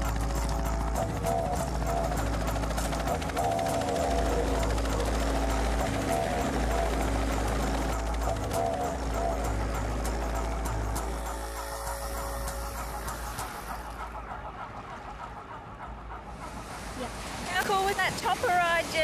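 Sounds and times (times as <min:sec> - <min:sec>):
helicopter engine and rotor: 0:00.0 - 0:16.8.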